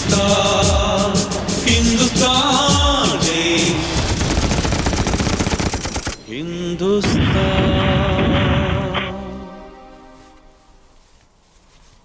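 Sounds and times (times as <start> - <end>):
machine gun burst: 1.7 - 6.3.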